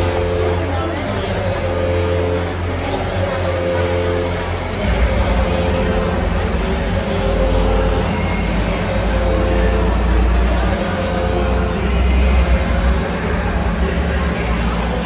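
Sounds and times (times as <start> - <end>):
crowd hum: 0.0 - 15.0
loud music with heavy bass: 0.0 - 15.0.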